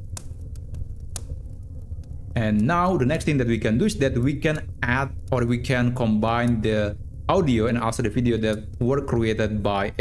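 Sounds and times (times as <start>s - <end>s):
fire crackles: 0.0s - 10.0s
low rumble of fire: 0.0s - 10.0s.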